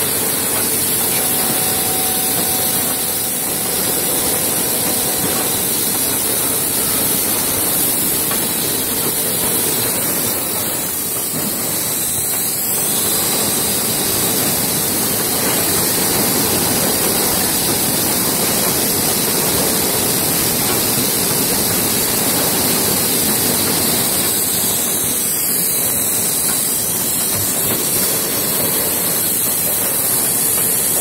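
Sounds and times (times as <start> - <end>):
factory machinery hiss: 0.0 - 31.0.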